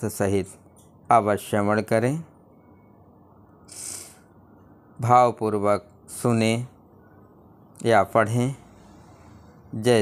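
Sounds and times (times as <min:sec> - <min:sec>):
person drawing quick breath: 0:03.7 - 0:04.3.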